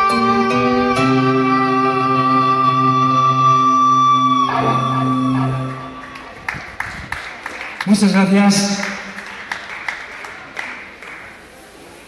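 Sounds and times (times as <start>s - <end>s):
keyboard sustained chord: 0.0s - 6.4s
electric guitar chord ringing: 0.0s - 6.5s.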